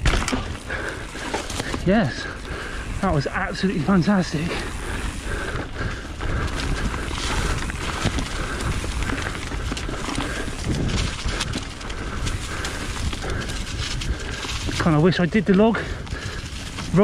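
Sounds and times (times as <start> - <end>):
bike clicks and rattles: 0.0 - 17.0
bike tyres rumbling on dirt: 0.0 - 17.0.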